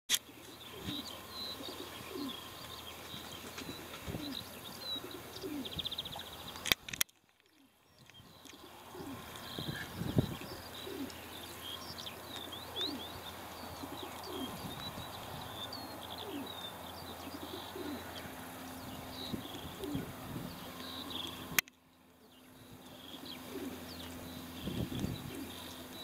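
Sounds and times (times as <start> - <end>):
small birds chirping: 0.1 - 26.0
pigeons cooing: 0.3 - 6.4, 8.3 - 21.6, 22.6 - 26.0
sharp clicks: 6.6 - 8.6, 20.8 - 21.8.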